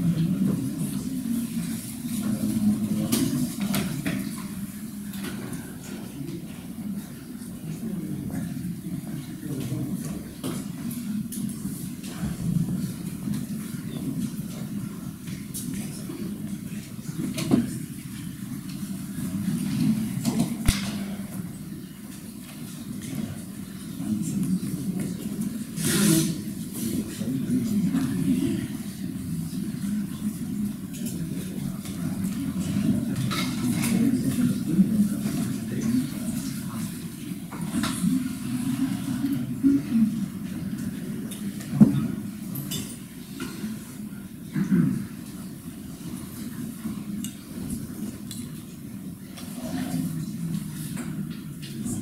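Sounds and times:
murmur of voices: 0.0 - 52.0.

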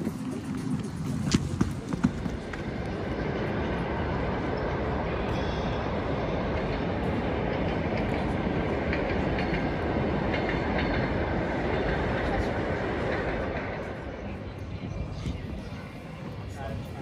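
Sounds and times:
steady rumbling noise: 0.0 - 17.0.

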